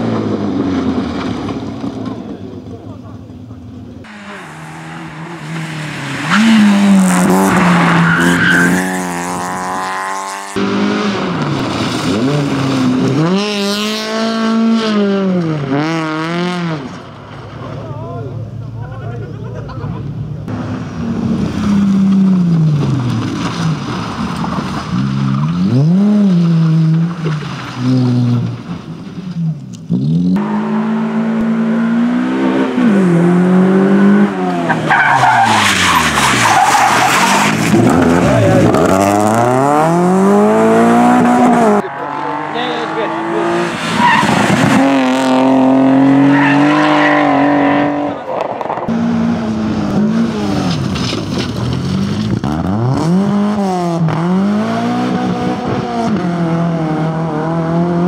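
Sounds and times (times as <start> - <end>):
rally car engines revving: 0.0 - 58.0
tyres skidding and squealing: 0.8 - 14.0, 14.9 - 53.2.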